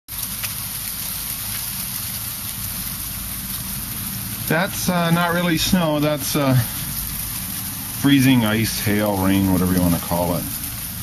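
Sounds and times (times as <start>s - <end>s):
freezing rain pattering: 0.1s - 11.0s
steady low rumble: 0.1s - 11.0s.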